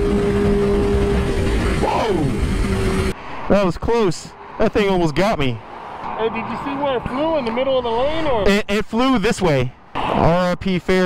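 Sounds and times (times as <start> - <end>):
motorcycle engine drone: 0.0 - 3.3.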